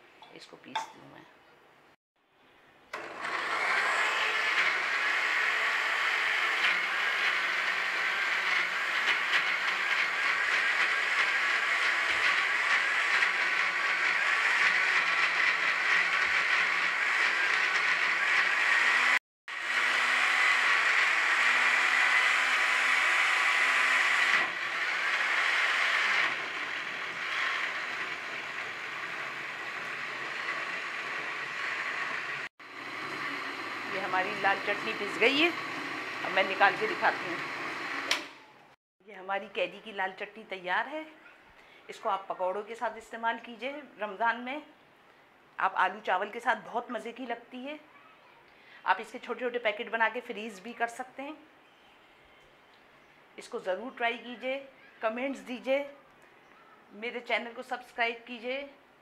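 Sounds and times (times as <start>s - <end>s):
blender motor grinding: 2.9s - 38.7s.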